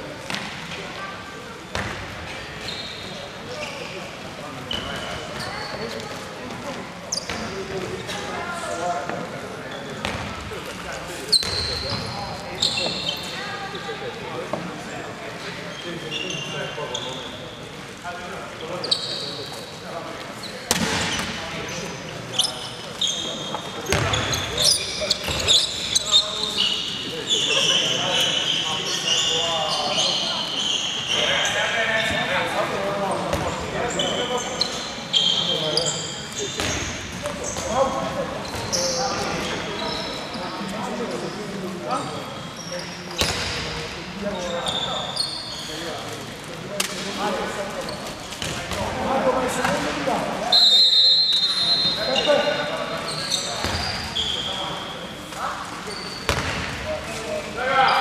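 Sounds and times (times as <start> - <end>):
shoe squeaks: 1.7 - 6.1, 7.1 - 8.3, 11.2 - 13.6, 15.6 - 17.7, 18.6 - 19.8, 20.4 - 46.2, 47.2 - 49.8, 50.4 - 58.0
ball bouncing on wooden court: 11.4 - 11.6, 23.9 - 24.3, 56.3 - 56.8.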